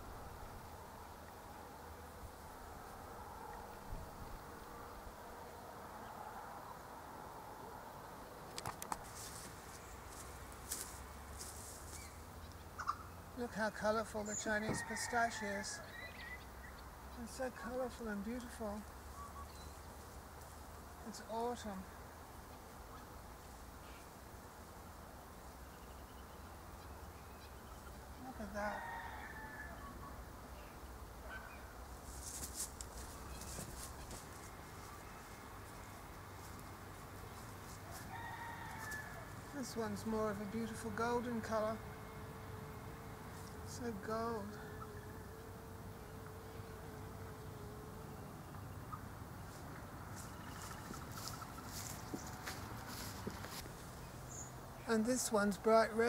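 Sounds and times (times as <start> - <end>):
light crackles: 8.4 - 12.6, 32.0 - 38.0
faint bird chirps: 19.1 - 19.8.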